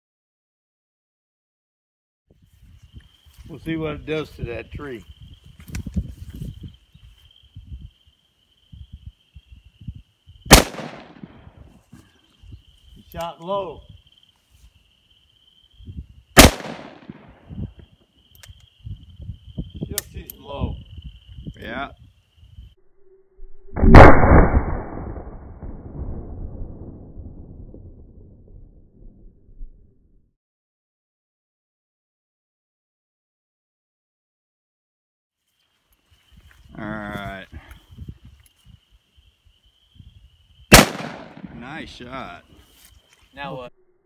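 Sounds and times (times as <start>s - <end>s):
revolver gunshot: 10.5s - 11.5s, 16.4s - 17.4s, 23.8s - 26.0s, 40.7s - 41.6s
rolling echo: 10.5s - 11.6s, 16.4s - 17.5s, 40.7s - 42.0s.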